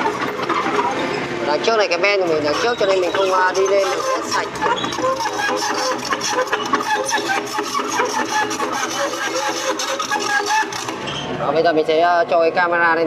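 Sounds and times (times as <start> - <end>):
crawler tracks squealing and clicking: 0.0 - 11.5.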